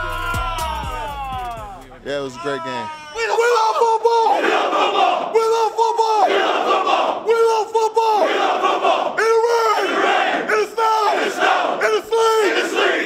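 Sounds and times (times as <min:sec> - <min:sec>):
group shouting a chant: 0:00.0 - 0:01.8, 0:02.5 - 0:13.0.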